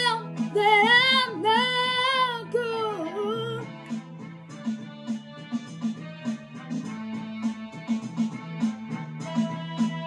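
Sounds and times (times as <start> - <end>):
girl singing held wavering notes: 0.0 - 3.7
recorded backing track: 0.0 - 10.0.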